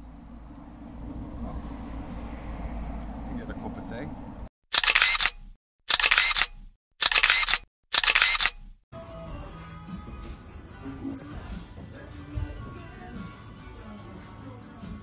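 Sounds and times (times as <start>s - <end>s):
steady low rumble: 0.0s - 2.2s
camera shutter clicks: 4.7s - 8.7s.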